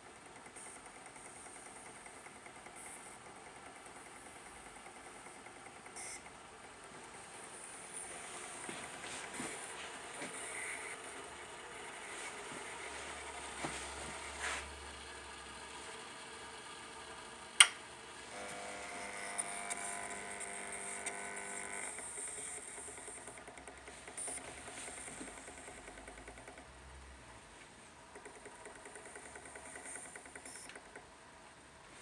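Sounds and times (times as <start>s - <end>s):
small motor whining: 18.3s - 26.6s.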